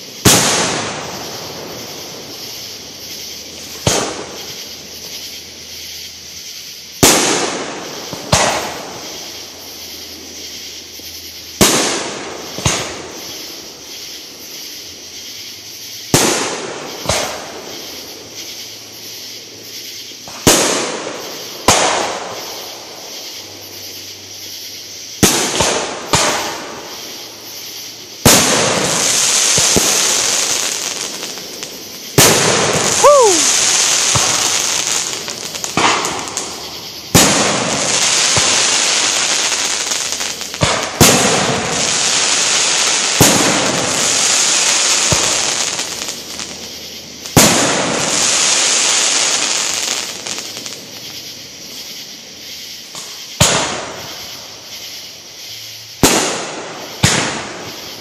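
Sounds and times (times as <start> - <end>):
fireworks booming: 0.0 - 58.0
fireworks hiss and crackle: 0.0 - 58.0
falling whistle: 32.8 - 33.7.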